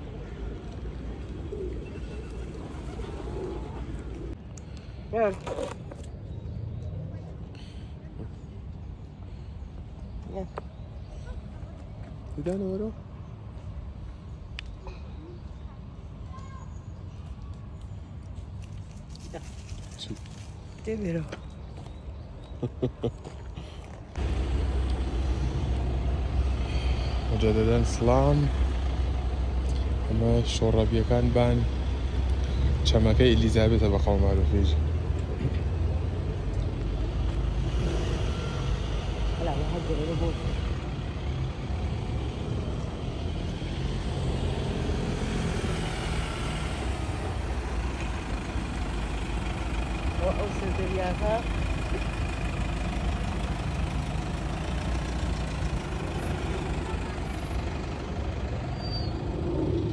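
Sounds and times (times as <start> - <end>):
passing traffic: 0.0 - 59.9
vehicle engine rumbling: 0.0 - 59.9
voices: 19.2 - 21.5, 48.2 - 58.8.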